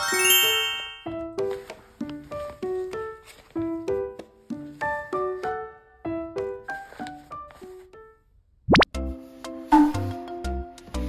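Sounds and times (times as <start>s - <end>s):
background music: 0.0s - 11.0s
light music with steady beat: 1.0s - 8.1s, 8.8s - 11.0s
rising pop sound effect: 8.7s - 9.0s.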